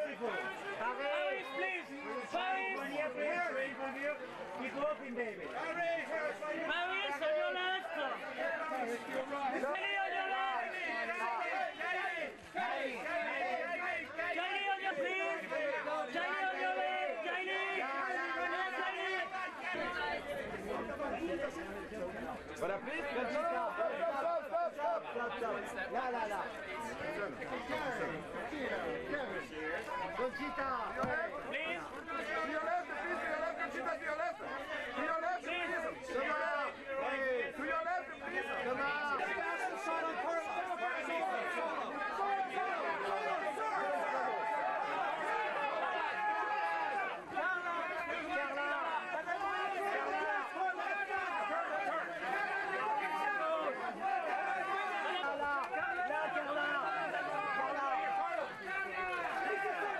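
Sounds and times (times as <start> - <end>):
people calling out over one another: 0.0 - 59.9
photographers shouting and talking: 0.0 - 59.9.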